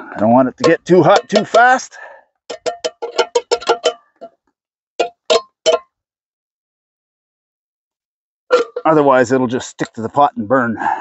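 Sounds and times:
metal spoon clinking on pot: 0.6s - 1.7s.

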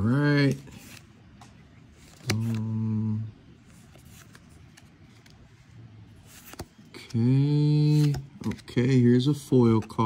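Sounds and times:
man speaking: 0.0s - 0.7s, 2.2s - 3.4s, 7.0s - 10.0s
trading cards clicking and rustling: 0.4s - 2.9s, 6.2s - 10.0s.

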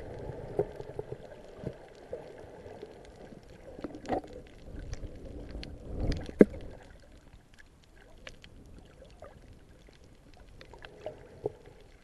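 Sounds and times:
faint crackling clicks: 0.0s - 12.0s
water swirling underwater: 0.0s - 12.0s.

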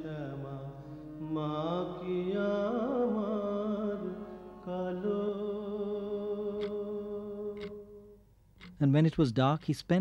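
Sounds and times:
solo voice singing a chant: 0.0s - 7.9s.

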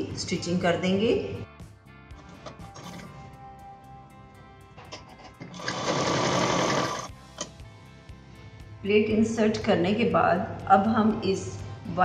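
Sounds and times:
soft background music: 0.0s - 12.0s
sewing machine running: 5.5s - 7.1s.

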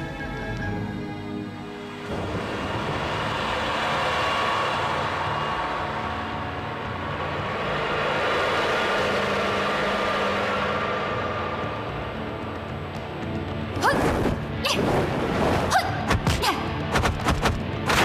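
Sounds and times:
background music: 0.0s - 18.0s
rushing rumbling sound effect: 1.8s - 18.0s.

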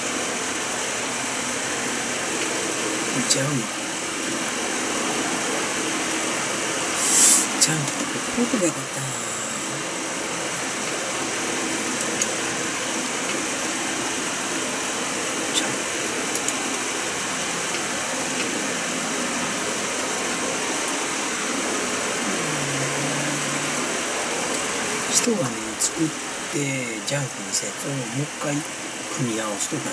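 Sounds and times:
fan rushing noise: 0.0s - 29.9s.

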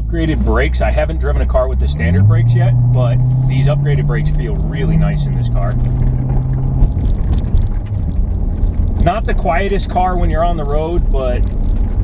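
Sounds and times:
car engine rumble: 0.0s - 12.0s
tyre road noise: 0.0s - 12.0s.

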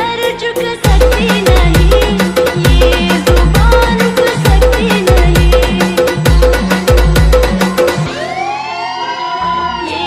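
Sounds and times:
siren-like gliding tone: 8.0s - 10.0s.

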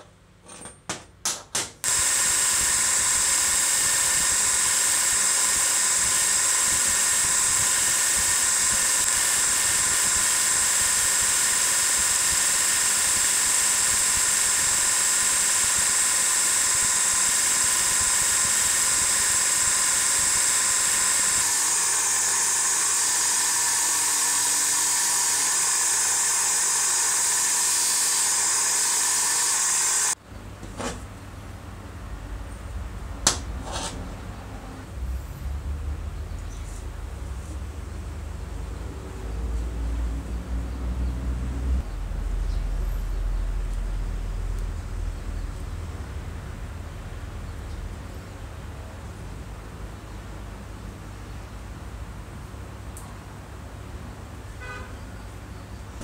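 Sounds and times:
grinding wheel whining on steel: 1.9s - 30.2s.

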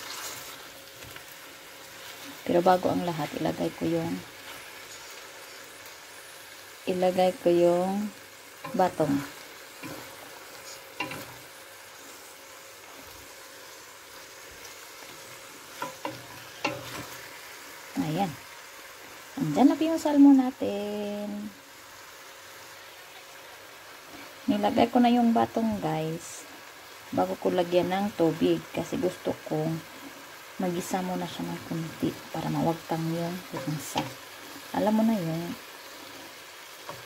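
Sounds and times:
fish sizzling in hot oil: 0.0s - 37.0s.

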